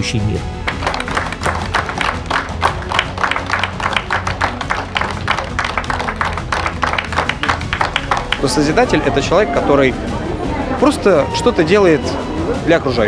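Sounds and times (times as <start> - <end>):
background music: 0.0 - 13.0
audience applauding: 0.6 - 13.0.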